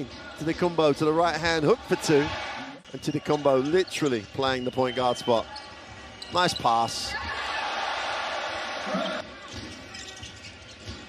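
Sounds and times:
basketball arena ambience: 0.0s - 11.0s
loud arena crowd noise: 0.0s - 11.0s.

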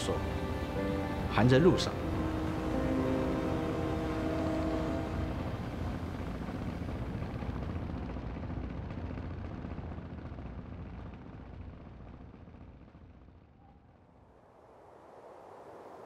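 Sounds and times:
held music chord: 0.0s - 7.6s
low steady rumble: 0.0s - 16.0s.

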